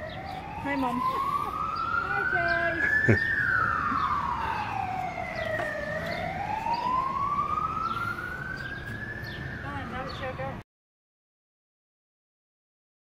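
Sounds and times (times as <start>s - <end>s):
emergency siren wailing: 0.0s - 10.6s.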